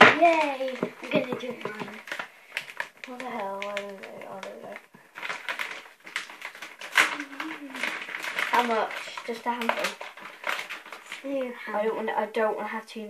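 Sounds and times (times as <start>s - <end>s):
girls talking quietly: 0.0s - 2.1s, 3.0s - 4.8s, 7.0s - 10.0s, 11.2s - 13.0s
items clicking and knocking near glass bowl: 0.0s - 11.5s.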